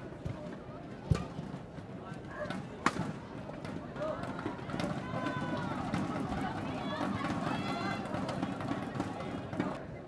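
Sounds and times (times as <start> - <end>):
crowd voices and chatter: 0.0 - 10.0.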